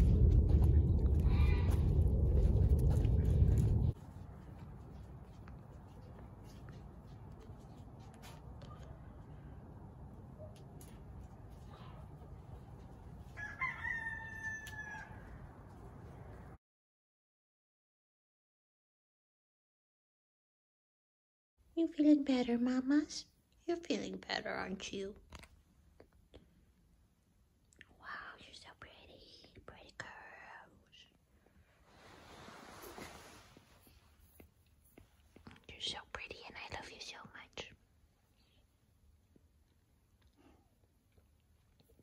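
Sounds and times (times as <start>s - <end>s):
soft breathy whispering: 0.1s - 9.8s, 27.8s - 38.9s
rooster crowing: 13.3s - 15.5s.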